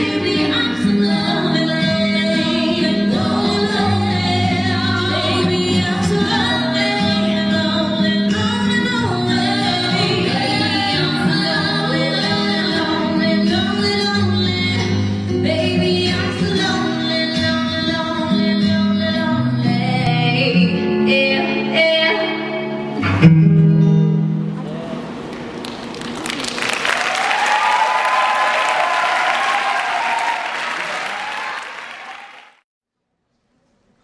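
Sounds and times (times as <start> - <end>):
audience applauding and cheering: 25.5 - 32.6.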